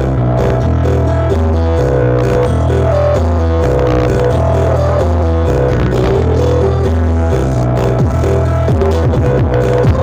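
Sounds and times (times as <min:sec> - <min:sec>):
heavy bass notes: 0:00.0 - 0:10.0
loud dance music: 0:00.0 - 0:10.0.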